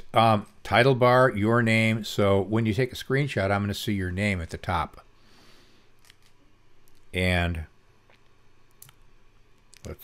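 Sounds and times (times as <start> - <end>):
man speaking: 0.0 - 5.1, 7.1 - 7.8, 9.8 - 10.0.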